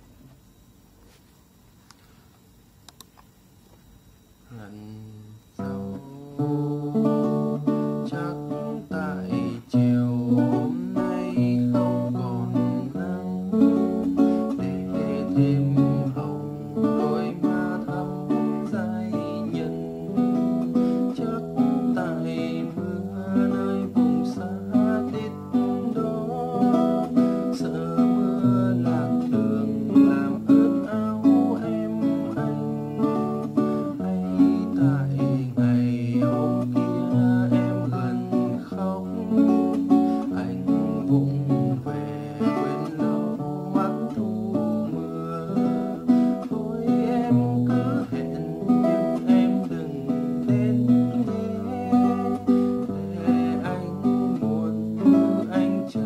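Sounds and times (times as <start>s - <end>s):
fingerstyle classical guitar: 5.6s - 56.0s.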